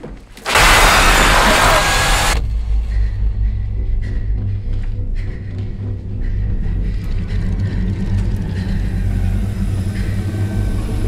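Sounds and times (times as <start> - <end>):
loud rushing burst: 0.5 - 2.4
deep low rumble: 0.7 - 11.0.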